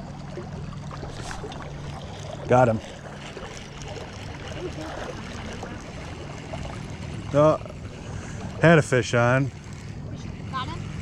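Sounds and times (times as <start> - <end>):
river water flowing: 0.0 - 11.0.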